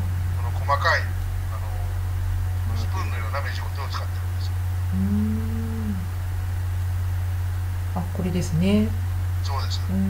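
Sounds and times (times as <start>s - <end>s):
low electrical hum: 0.0s - 10.0s
man humming: 4.9s - 6.2s.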